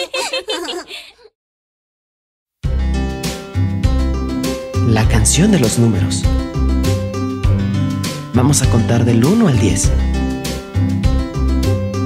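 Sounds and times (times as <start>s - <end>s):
cartoon children giggling: 0.0s - 1.3s.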